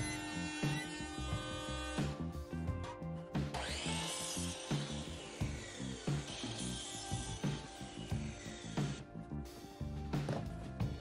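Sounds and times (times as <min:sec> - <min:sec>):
miter saw cutting wood: 0:00.0 - 0:02.4, 0:03.5 - 0:09.0
background music with beat: 0:00.0 - 0:11.0.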